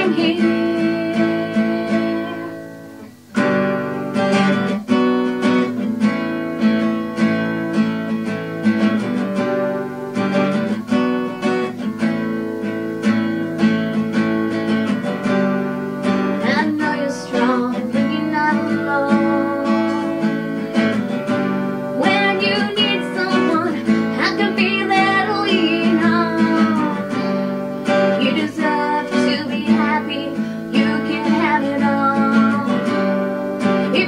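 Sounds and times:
woman singing: 0:00.0 - 0:03.0, 0:16.2 - 0:34.0
acoustic guitar strumming: 0:00.0 - 0:34.0.

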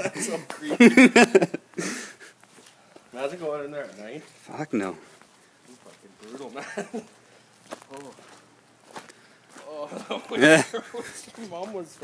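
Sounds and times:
footsteps: 0:00.0 - 0:12.0.

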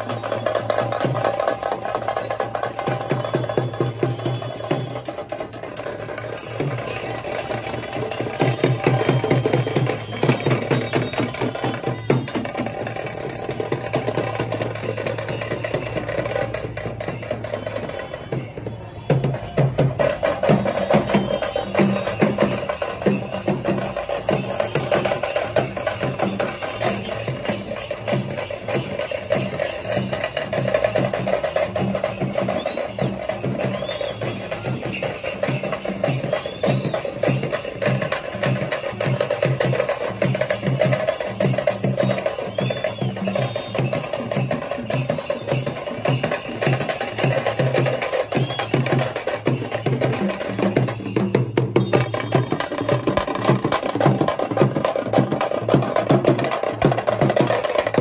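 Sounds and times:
rapid street drumming: 0:00.0 - 0:58.0.

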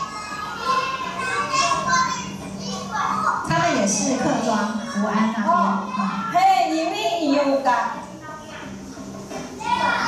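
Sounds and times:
children talking over loudspeakers: 0:00.0 - 0:10.0.

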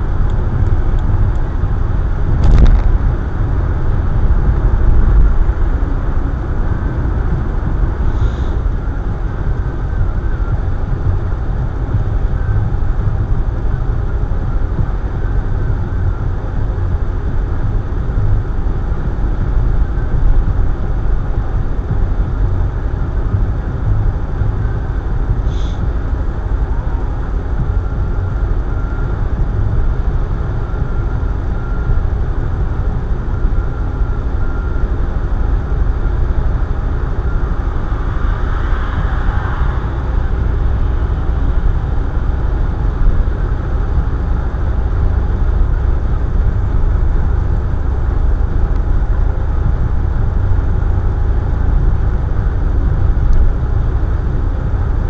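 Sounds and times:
car road and engine rumble: 0:00.0 - 0:55.0
brief rushing swell: 0:37.6 - 0:42.3.

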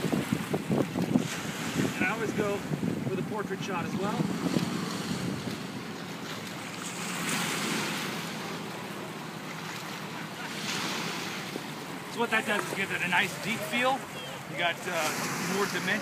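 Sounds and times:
wind buffeting microphone: 0:00.0 - 0:09.4
waves washing over rocks: 0:00.0 - 0:16.0.

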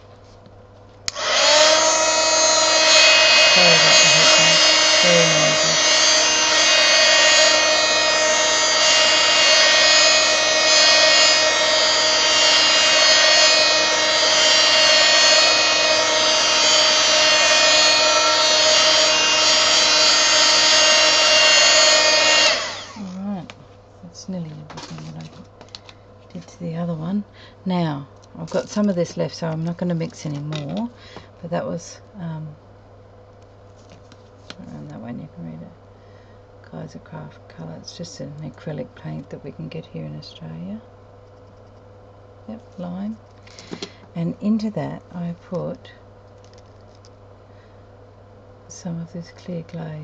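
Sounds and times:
heat gun fan whining: 0:00.0 - 0:27.5, 0:40.6 - 0:48.5
heat gun switch: 0:01.1 - 0:23.2.

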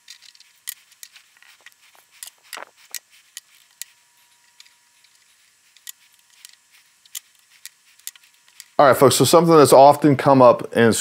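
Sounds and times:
man's voice: 0:08.8 - 0:11.0.

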